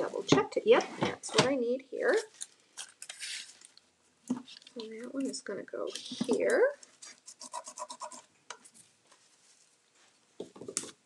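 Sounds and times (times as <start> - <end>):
hands scratching paper strip: 7.0 - 8.3.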